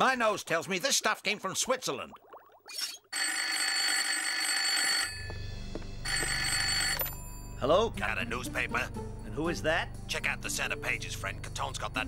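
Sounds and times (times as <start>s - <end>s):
telephone bell ringing: 3.1s - 7.6s.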